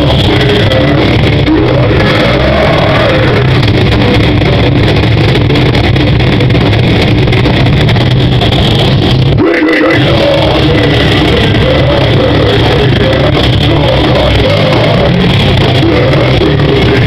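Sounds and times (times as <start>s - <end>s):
metal band playing live: 0.0s - 17.0s.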